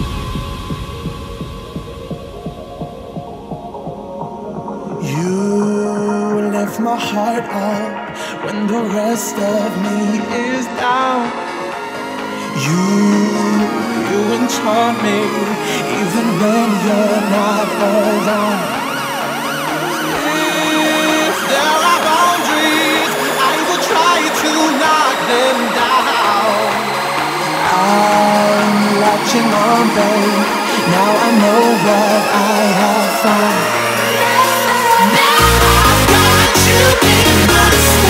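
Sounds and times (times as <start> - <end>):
muffled electronic dance music: 0.0 - 38.0
held synth tones: 10.2 - 38.0
siren sound sweeping: 10.7 - 37.0.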